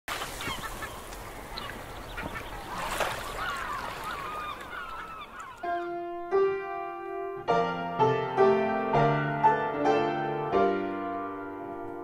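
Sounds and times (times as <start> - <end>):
birds calling: 0.1 - 6.3.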